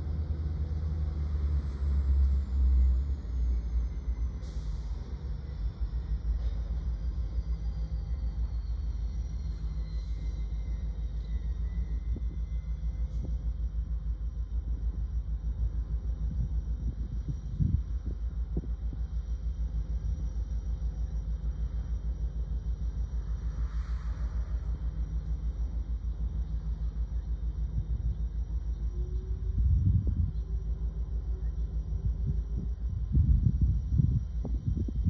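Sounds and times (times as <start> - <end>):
diesel locomotives rumbling: 0.0 - 35.0.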